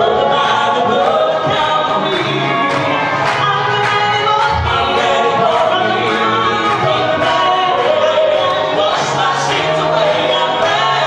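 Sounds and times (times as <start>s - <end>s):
gospel group singing in harmony: 0.0s - 11.0s
hand claps on the beat: 0.3s - 11.0s.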